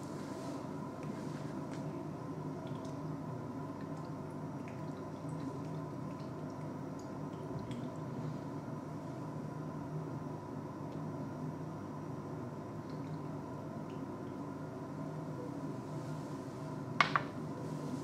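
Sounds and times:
steady low hum: 0.0s - 18.0s
small drips and ticks: 1.0s - 8.6s, 12.7s - 15.1s.

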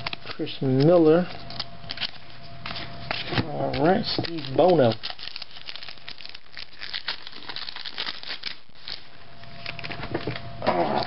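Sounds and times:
foil wrapper crinkling and tearing: 0.0s - 10.4s.

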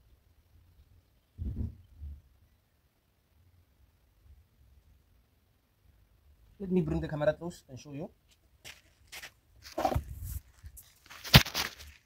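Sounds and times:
phone handling scuffs and rubs: 8.7s - 12.0s.

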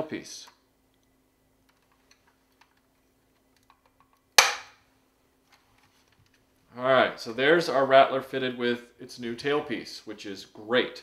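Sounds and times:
plastic clicking: 0.4s - 4.6s
plastic piece snapping into place: 3.6s - 4.7s.

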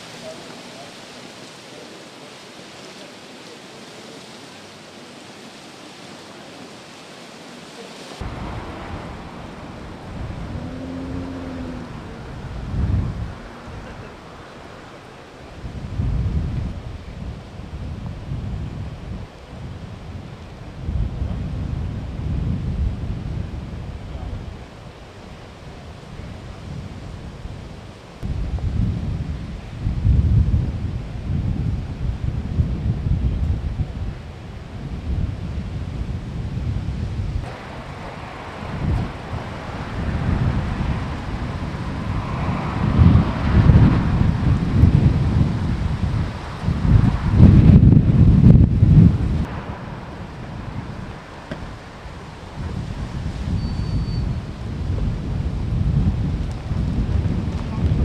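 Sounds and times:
broad hiss: 0.0s - 20.3s
wind buffeting microphone: 4.5s - 58.0s.

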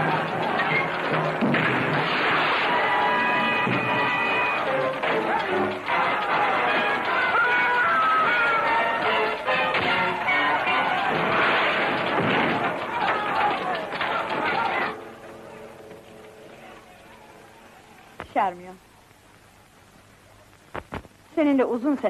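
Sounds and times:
men shouting: 10.1s - 15.0s.

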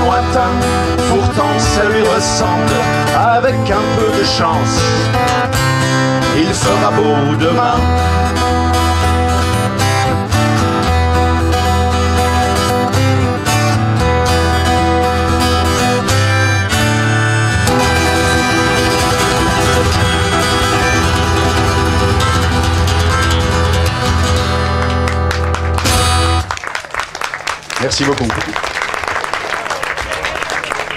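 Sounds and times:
amplified acoustic guitars strumming: 0.0s - 26.5s
low bass line: 14.0s - 25.2s.

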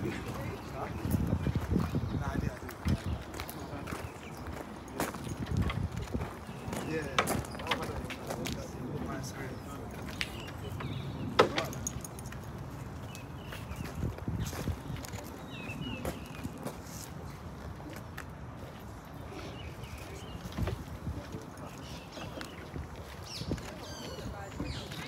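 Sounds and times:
wind rumble on microphone: 0.0s - 11.4s, 12.5s - 17.3s, 19.6s - 25.0s
faint voices: 0.0s - 13.9s, 14.5s - 25.0s.

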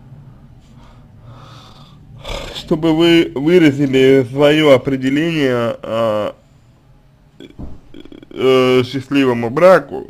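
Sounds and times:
low room hum: 0.0s - 10.0s
faint breath: 0.3s - 2.1s.

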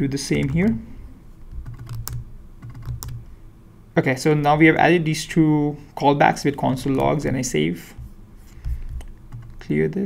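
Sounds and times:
computer keyboard typing: 0.3s - 0.8s, 1.5s - 3.3s, 6.8s - 7.2s, 8.0s - 9.7s.

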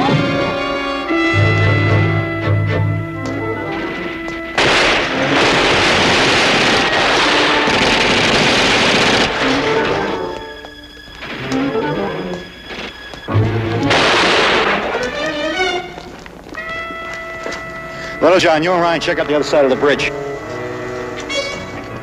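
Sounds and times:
orchestral music with brass: 0.0s - 8.2s, 8.8s - 22.0s
explosions: 3.4s - 10.4s, 12.7s - 15.8s
gunfire: 3.5s - 10.4s, 13.4s - 15.9s.

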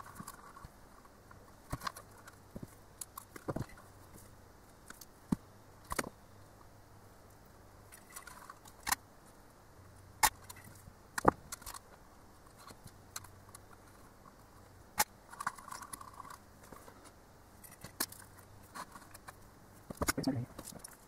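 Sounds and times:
wires rustling: 10.2s - 21.0s.

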